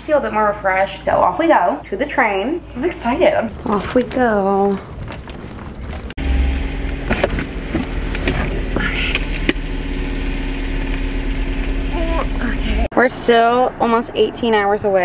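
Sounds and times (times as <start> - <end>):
car engine idling: 5.2 - 15.0.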